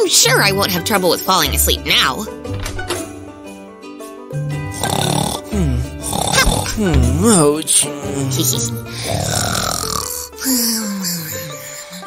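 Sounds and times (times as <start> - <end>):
background music: 0.0 - 12.0
cartoon snoring: 4.6 - 12.0.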